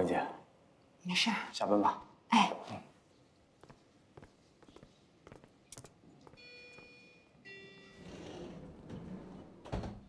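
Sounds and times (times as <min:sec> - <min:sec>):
footsteps on hard floor: 0:03.6 - 0:06.9
elevator doors sliding open: 0:07.9 - 0:10.0.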